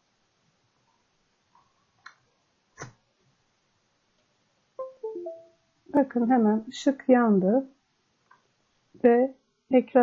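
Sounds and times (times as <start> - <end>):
device connected chime: 4.8 - 5.6.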